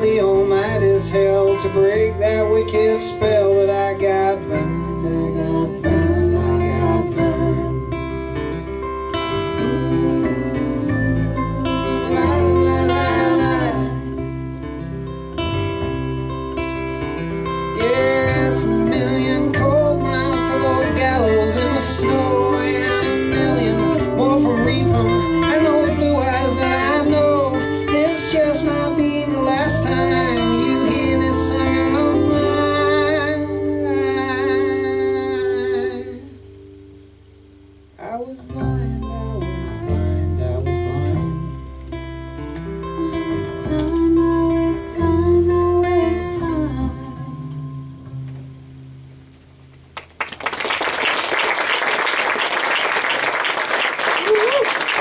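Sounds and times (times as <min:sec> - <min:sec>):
wavering melodic lead line: 0:00.0 - 0:36.2
strummed acoustic guitar: 0:00.0 - 0:37.0
upright double bass: 0:00.0 - 0:50.2.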